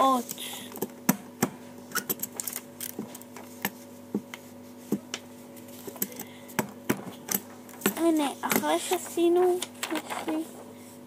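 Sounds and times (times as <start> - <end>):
steady low hum: 0.0 - 11.0
paper handling clicks and taps: 5.9 - 10.4.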